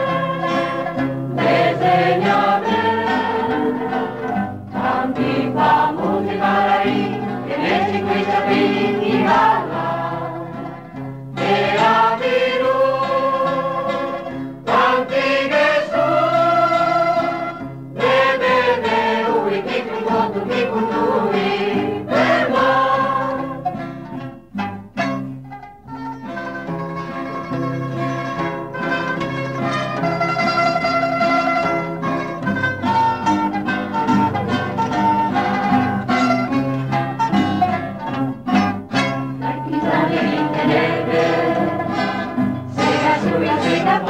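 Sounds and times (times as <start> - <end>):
choir singing: 0.0 - 23.8, 39.2 - 44.0
mandolin ensemble: 0.0 - 44.0.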